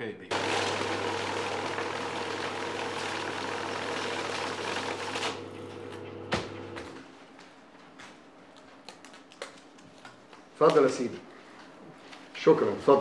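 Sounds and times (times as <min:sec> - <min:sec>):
banknote counting machine riffling: 0:00.3 - 0:06.0
motor hum: 0:00.3 - 0:07.0.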